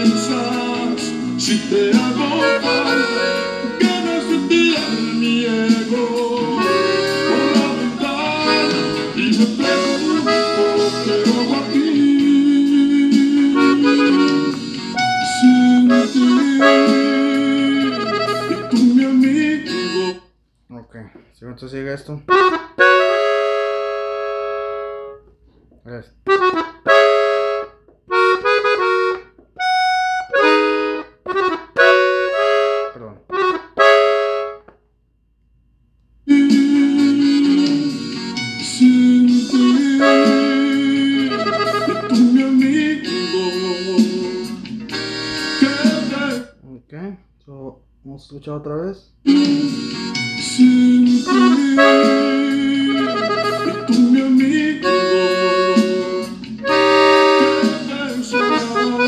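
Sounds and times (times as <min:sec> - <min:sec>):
band song recording: 0:00.0 - 0:20.3, 0:36.3 - 0:46.6, 0:49.2 - 0:59.0
button accordion phrases and chords: 0:00.0 - 0:34.8, 0:36.3 - 0:59.0.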